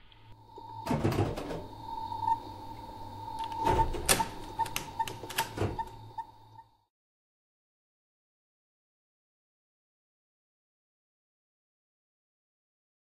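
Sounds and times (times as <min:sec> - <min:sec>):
low hum: 0:00.0 - 0:06.9
steady tone: 0:00.2 - 0:06.9.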